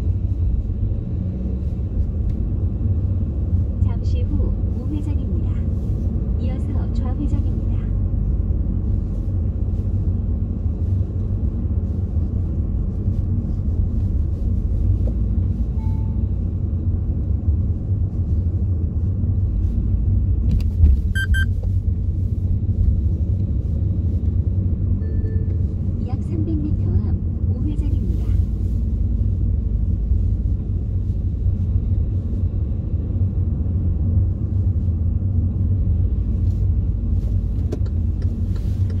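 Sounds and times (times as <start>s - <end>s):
car engine and tyres rumbling: 0.0s - 39.0s
brief high-pitched tone: 15.8s - 16.2s, 21.2s - 21.5s, 25.0s - 25.6s.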